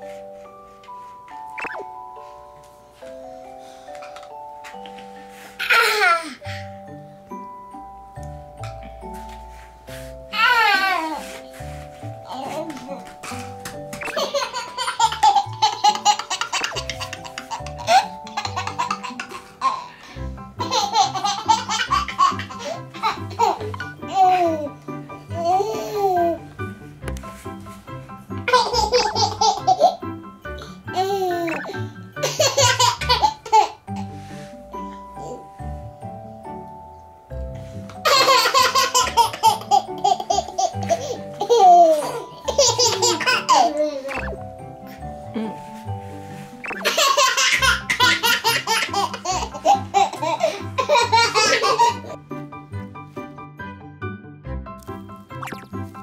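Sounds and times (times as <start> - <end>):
soft background music: 0.0 - 56.0
toddler laughing: 5.6 - 6.4, 14.0 - 20.0, 30.9 - 33.8, 38.0 - 44.4, 46.8 - 52.2.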